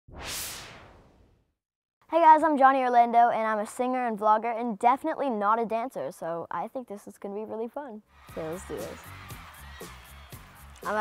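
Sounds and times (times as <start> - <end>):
whoosh sound effect: 0.1 - 1.5.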